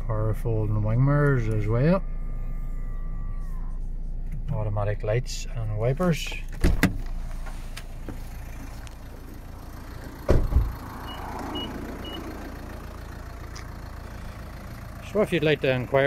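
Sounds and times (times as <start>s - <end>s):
steady low rumble: 3.8s - 16.0s
car door shutting: 6.5s - 9.4s, 10.0s - 12.3s.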